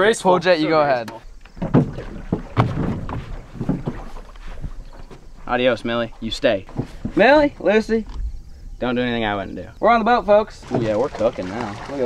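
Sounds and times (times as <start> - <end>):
boat hull knocking and thumping: 1.1 - 8.4, 10.6 - 12.0
wind on microphone: 6.9 - 9.8.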